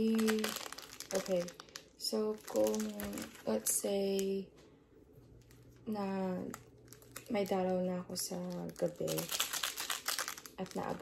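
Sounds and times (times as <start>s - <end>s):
plastic wrapper crinkling: 0.0s - 4.4s, 5.3s - 11.0s.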